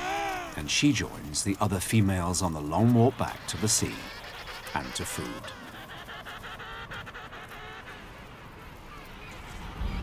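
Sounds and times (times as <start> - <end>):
penguins calling: 2.0 - 8.8.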